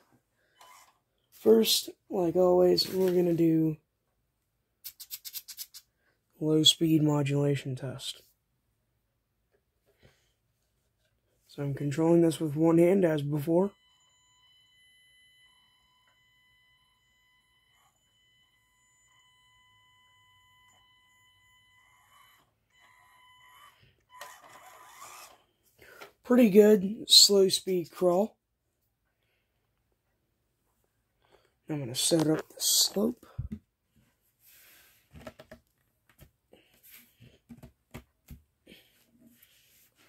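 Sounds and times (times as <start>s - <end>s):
toy car electric motor whine: 0.6s - 1.0s, 20.3s - 25.5s.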